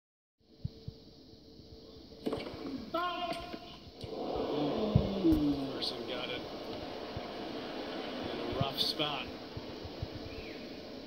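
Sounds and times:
tennis ball struck: 2.2 - 2.7.

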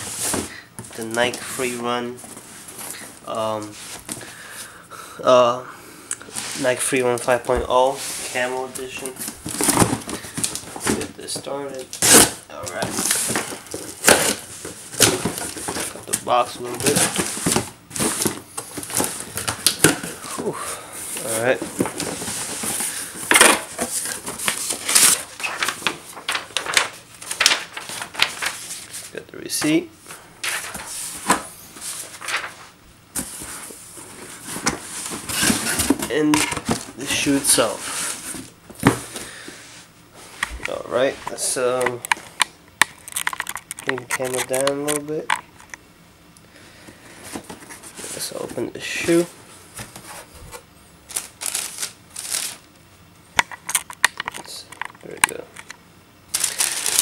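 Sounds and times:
packing paper rustling: 6.3 - 20.5, 21.1 - 29.2, 30.4 - 39.5, 43.0 - 45.6, 47.2 - 52.7, 56.3 - 57.0
cardboard box rustling: 12.0 - 20.4
tissue paper rustling: 21.2 - 29.1, 50.0 - 52.6, 56.3 - 57.0.

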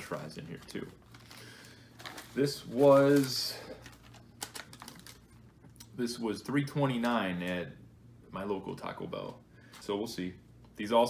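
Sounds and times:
paper receipt crinkling: 0.6 - 5.5.

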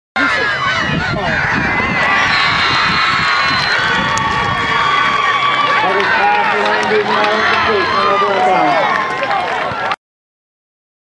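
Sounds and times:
crowd shouting and cheering: 0.2 - 10.0.

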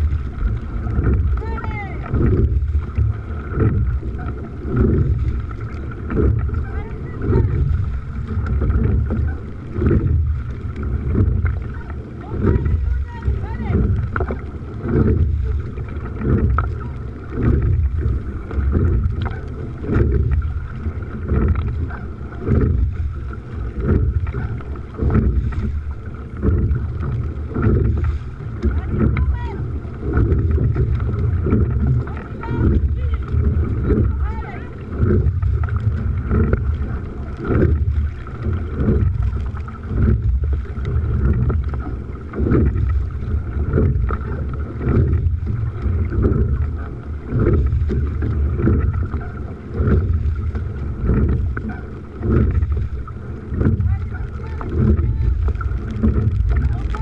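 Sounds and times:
oar blades striking water: 0.0 - 57.0
oars in oarlocks: 0.0 - 57.0
wind rumble on microphone: 0.0 - 57.0.

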